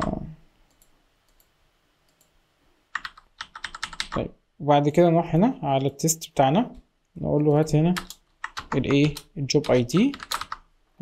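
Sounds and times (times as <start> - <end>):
computer keyboard typing: 2.9 - 4.2, 7.9 - 10.7.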